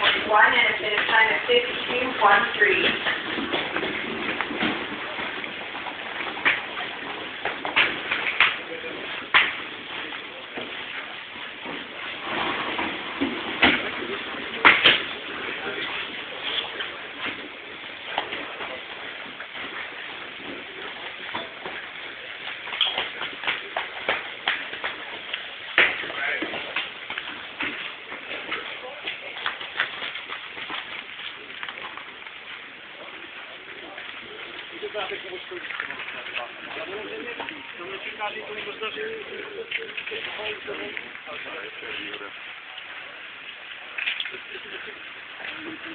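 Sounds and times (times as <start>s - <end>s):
people talking indistinctly: 0.0s - 4.2s, 32.8s - 45.9s.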